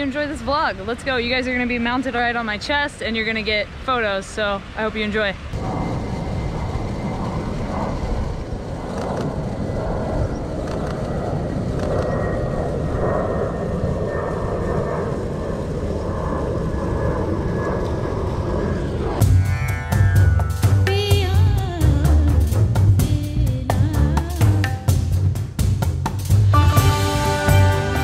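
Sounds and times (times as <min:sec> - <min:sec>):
low rushing noise: 0:00.0 - 0:28.0
music with drums: 0:19.2 - 0:28.0.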